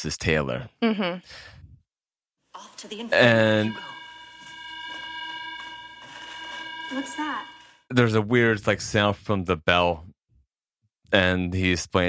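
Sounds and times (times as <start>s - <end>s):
electronic school bell tone: 3.0s - 7.9s.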